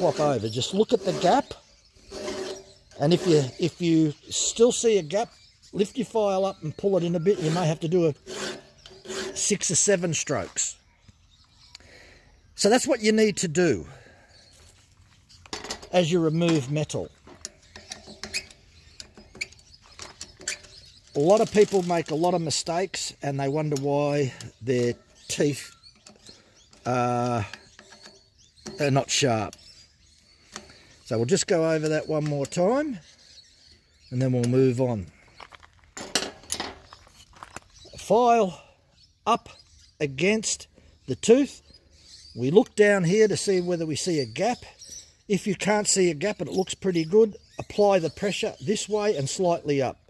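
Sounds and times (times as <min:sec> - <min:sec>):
man talking: 0:00.0 - 0:01.6, 0:03.0 - 0:08.2, 0:09.4 - 0:10.8, 0:12.6 - 0:14.0, 0:15.9 - 0:17.1, 0:21.2 - 0:25.7, 0:26.8 - 0:27.6, 0:28.8 - 0:29.6, 0:31.1 - 0:33.0, 0:34.1 - 0:35.1, 0:38.0 - 0:38.6, 0:39.3 - 0:41.6, 0:42.4 - 0:50.0
file scraping metal: 0:00.0 - 0:03.8, 0:07.0 - 0:09.7.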